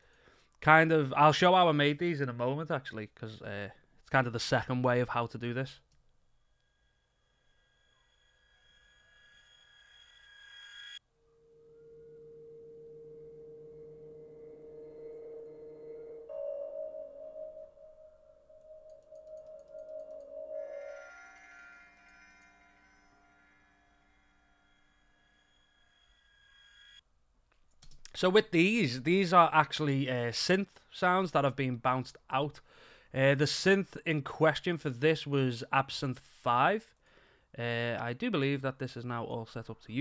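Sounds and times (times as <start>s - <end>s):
synthesized drone swell: 7.3s - 26.0s
bell-like synth tones: 11.0s - 22.9s.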